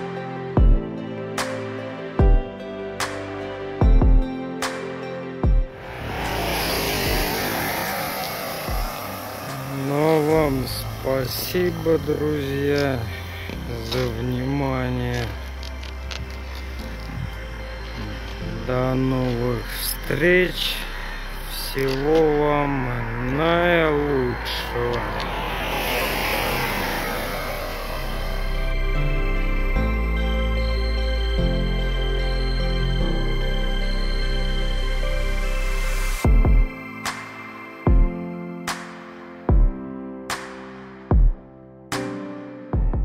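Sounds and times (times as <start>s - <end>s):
vehicle passing: 5.7s - 19.4s, 20.0s - 29.7s.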